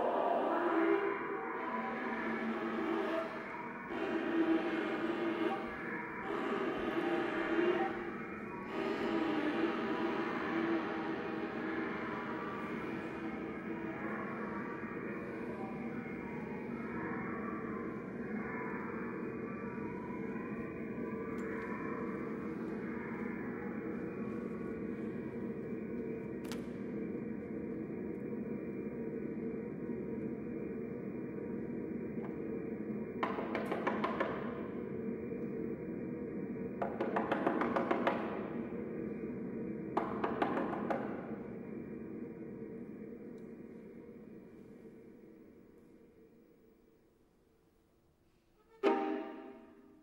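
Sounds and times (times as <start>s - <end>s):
chamber ensemble droning tones: 48.8s - 50.0s.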